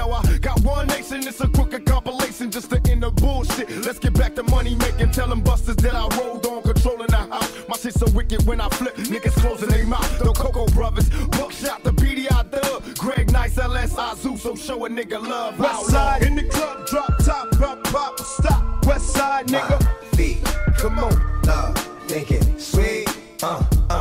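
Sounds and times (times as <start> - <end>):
rapping over a beat: 0.0 - 24.0
heavy bass hits: 15.9 - 16.6, 18.4 - 19.2, 23.7 - 24.0.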